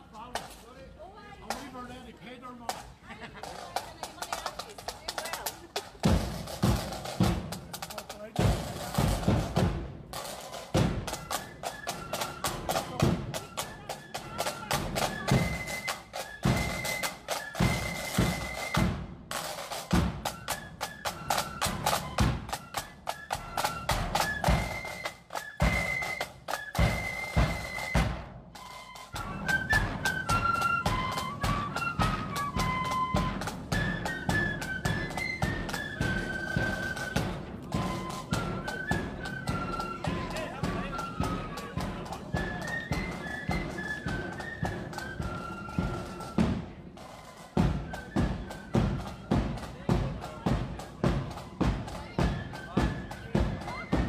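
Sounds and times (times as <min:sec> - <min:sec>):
steady drum beats: 0:00.0 - 0:54.0
high flute melody: 0:06.1 - 0:54.0.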